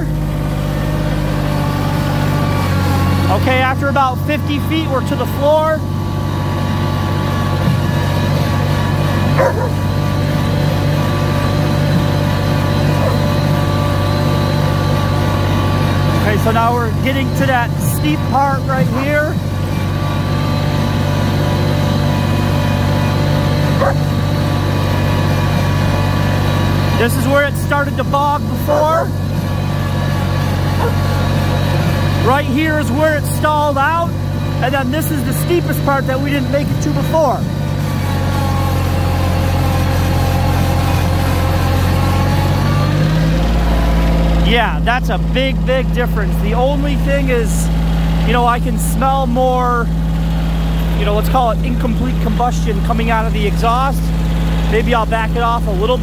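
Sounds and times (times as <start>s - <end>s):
tractor diesel engine under load: 0.0s - 56.0s.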